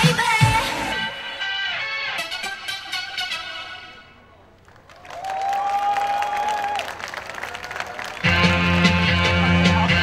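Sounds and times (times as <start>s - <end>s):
audience clapping and cheering: 4.6s - 10.0s.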